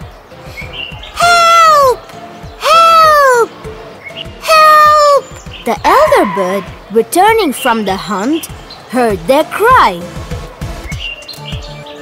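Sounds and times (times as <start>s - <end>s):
cartoon birds wailing: 1.0s - 3.5s, 4.2s - 8.4s.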